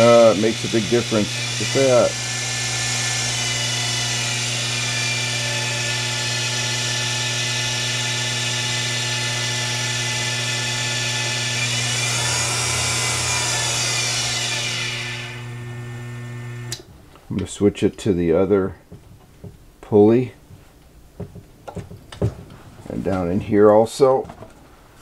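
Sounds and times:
lathe motor whining: 0.0s - 16.8s.

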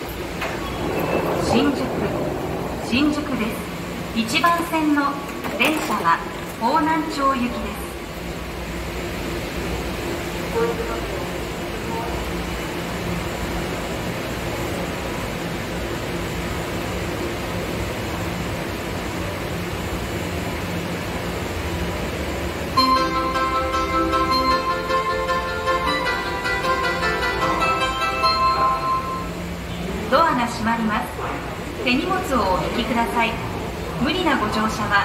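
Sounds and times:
low hum of stopped train: 0.0s - 35.0s.

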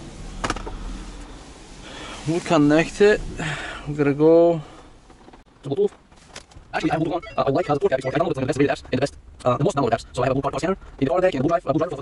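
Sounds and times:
soft rustling: 0.1s - 3.3s
low rumble: 6.6s - 11.7s.

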